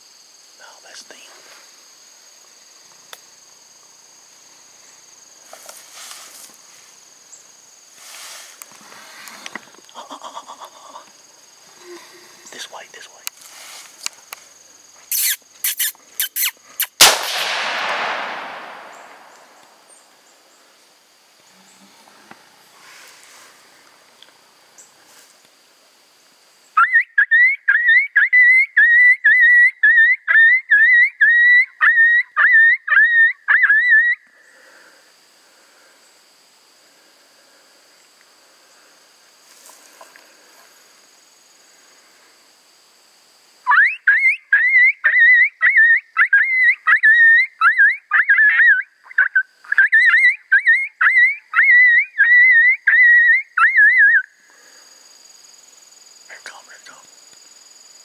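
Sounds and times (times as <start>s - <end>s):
coyote call high yelps: 15.1s - 17.1s, 26.8s - 34.2s, 43.6s - 54.2s.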